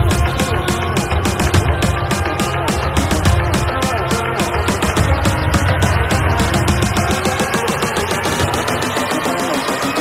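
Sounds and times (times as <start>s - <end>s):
fast pulsing synth line: 0.0s - 10.0s
psytrance electronic dance music: 0.0s - 10.0s.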